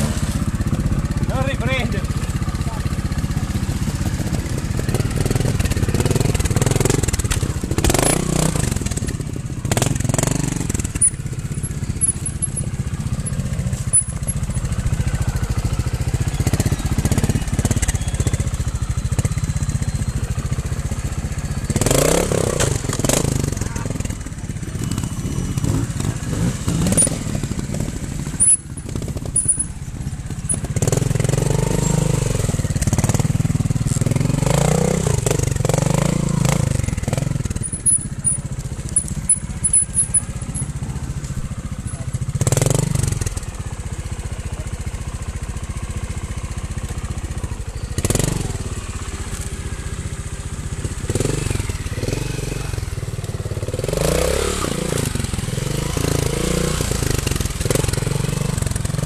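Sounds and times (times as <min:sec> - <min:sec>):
motorcycle engine revving in bursts: 0:00.0 - 0:59.0.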